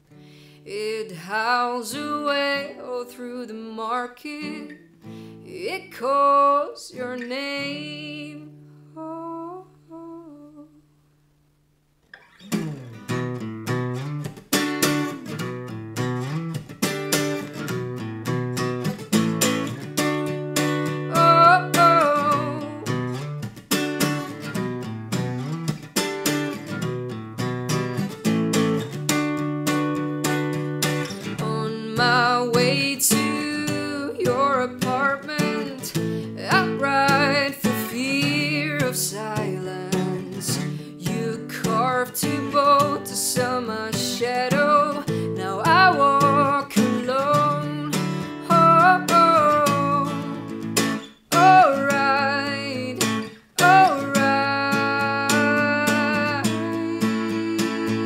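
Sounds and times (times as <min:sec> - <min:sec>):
acoustic guitar picking: 0:01.1 - 0:09.2, 0:12.0 - 0:58.0.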